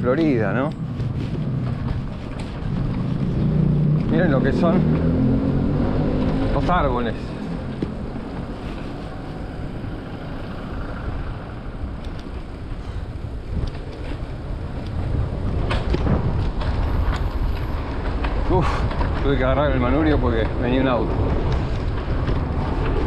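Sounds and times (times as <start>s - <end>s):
bike tyres rolling on asphalt: 0.0s - 23.0s
wind rumbling on microphone: 0.0s - 23.0s
car passing: 1.1s - 23.0s.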